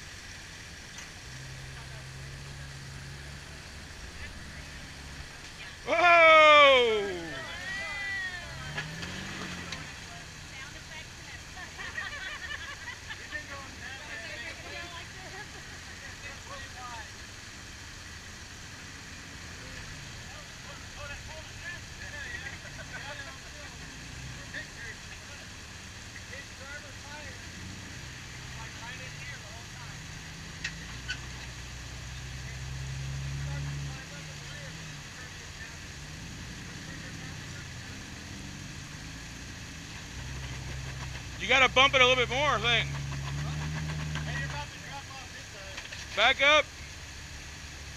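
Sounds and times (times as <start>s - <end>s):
car engine at low revs: 0.0s - 47.9s.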